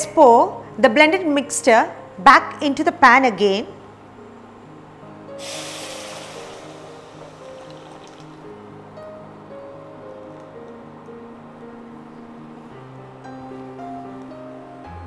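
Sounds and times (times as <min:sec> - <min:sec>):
background music: 0:00.0 - 0:15.0
soup pouring into a pan: 0:05.4 - 0:08.6.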